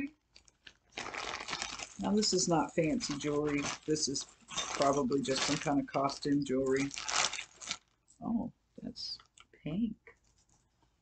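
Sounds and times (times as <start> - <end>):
plastic bag crinkling: 0.0 - 8.2.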